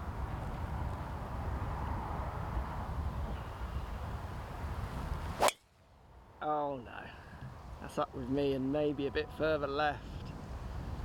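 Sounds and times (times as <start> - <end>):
wind rumbling on microphone: 0.0 - 6.4, 7.1 - 11.0
golf club striking ball: 5.4 - 5.7.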